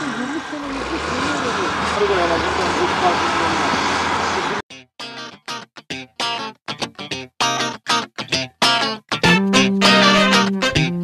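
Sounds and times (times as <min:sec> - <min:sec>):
pump engine rumbling: 0:00.0 - 0:04.6.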